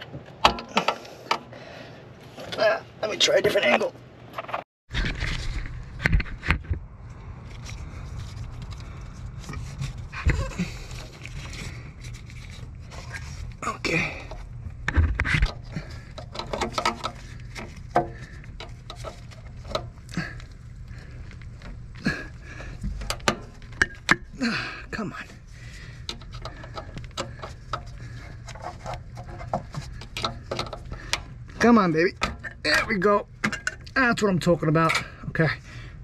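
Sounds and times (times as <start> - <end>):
steady low rumble: 4.9 - 36.0
person panting: 22.0 - 23.1, 24.3 - 28.6
rubber tube scraping and clicking: 25.7 - 31.5.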